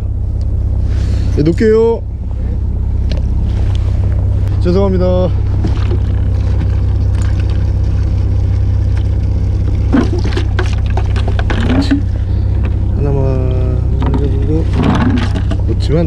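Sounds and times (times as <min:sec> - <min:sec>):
boat engine humming low: 0:00.0 - 0:16.0
water splashing and pouring: 0:05.5 - 0:12.1.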